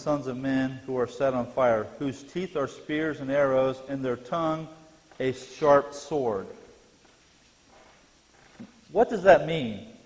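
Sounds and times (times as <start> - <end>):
man speaking: 0.0 - 6.7, 8.9 - 10.0.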